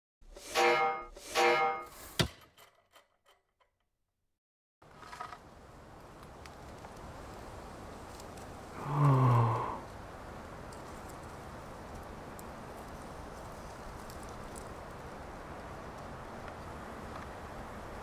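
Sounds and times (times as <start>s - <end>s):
outdoor background hiss: 4.8s - 18.0s.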